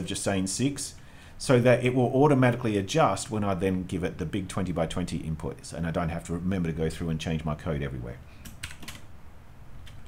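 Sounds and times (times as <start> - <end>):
quick keyboard keystrokes: 8.4 - 9.1.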